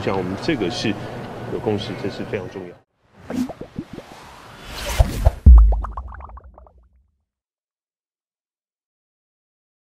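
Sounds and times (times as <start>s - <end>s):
whoosh: 3.2s - 6.7s
deep boom: 5.2s - 6.7s.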